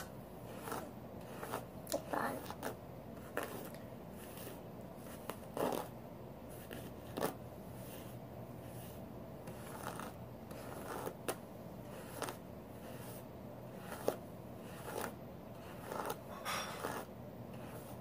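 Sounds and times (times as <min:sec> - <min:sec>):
faint room hum: 0:00.0 - 0:18.0.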